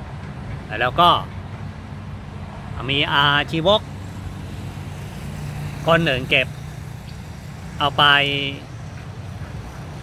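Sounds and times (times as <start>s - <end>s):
man speaking: 0.7s - 1.3s, 2.8s - 3.9s, 5.8s - 6.6s, 7.8s - 8.7s.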